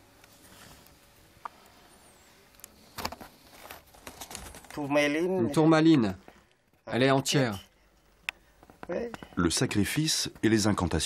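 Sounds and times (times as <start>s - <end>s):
rustling and scraping: 0.2s - 2.0s, 2.8s - 5.2s
man speaking: 4.8s - 6.2s, 6.8s - 7.7s, 8.9s - 11.0s.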